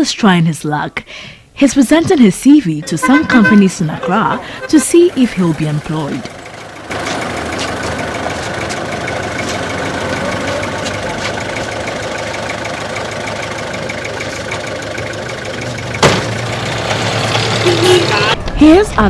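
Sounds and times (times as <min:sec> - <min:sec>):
minibus engine idling: 0:03.9 - 0:18.4.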